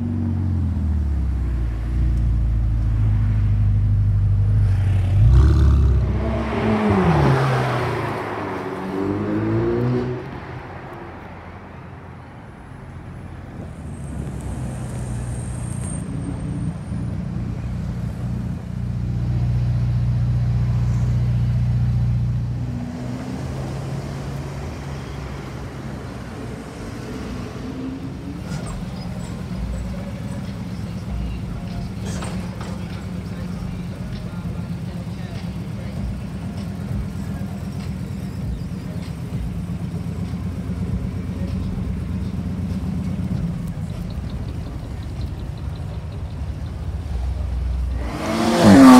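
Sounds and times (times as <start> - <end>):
car engine rumbling at low revs: 0.0 - 48.9
car engines in street traffic: 0.0 - 48.9.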